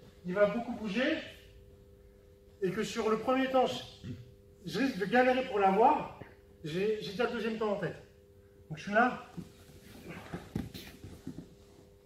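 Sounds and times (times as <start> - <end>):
soft thuds and scuffs on mat: 9.4 - 12.0.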